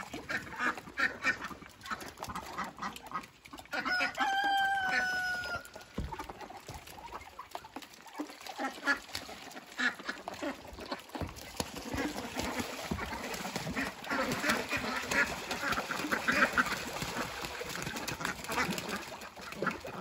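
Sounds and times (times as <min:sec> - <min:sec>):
ducks quacking: 0:00.0 - 0:20.0
ducks splashing in water: 0:00.0 - 0:20.0.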